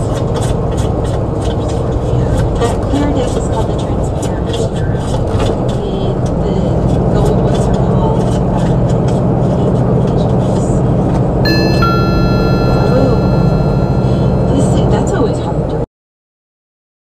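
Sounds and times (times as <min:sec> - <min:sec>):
high-pitched electronic tone: 0:11.5 - 0:15.3.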